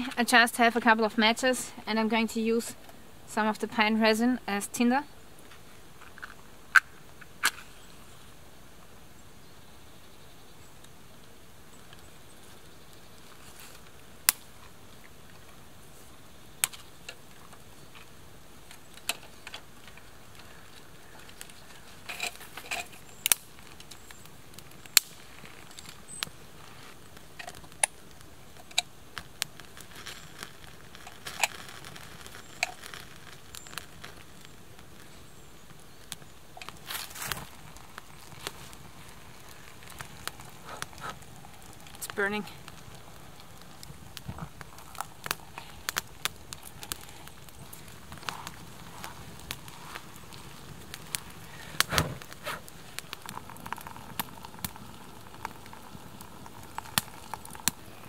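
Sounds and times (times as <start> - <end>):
campfire crackling and popping: 0.0 - 58.0
faint steady hiss: 0.0 - 58.0.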